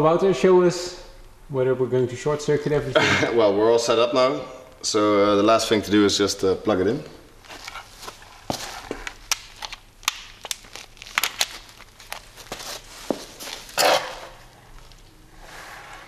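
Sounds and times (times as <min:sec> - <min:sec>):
footsteps on concrete: 0:12.3 - 0:13.7.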